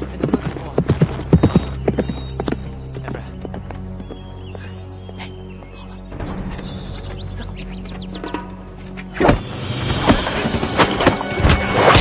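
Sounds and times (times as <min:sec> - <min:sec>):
horse hooves galloping on dirt: 0:00.0 - 0:05.1
background music: 0:00.0 - 0:12.0.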